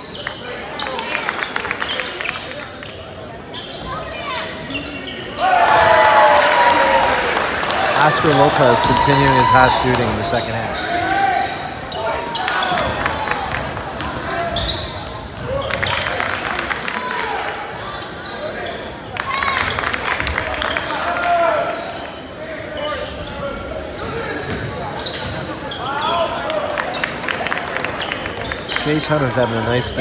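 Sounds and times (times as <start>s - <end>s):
sneaker squeaks: 1.8s - 5.6s, 9.6s - 13.0s, 14.1s - 16.2s, 17.7s - 19.8s, 21.6s - 27.2s.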